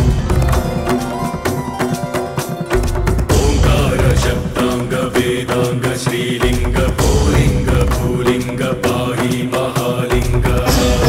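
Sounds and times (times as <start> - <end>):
steady held tones: 0.0 - 5.1
devotional chanting: 0.0 - 11.0
drum strokes: 0.0 - 11.0.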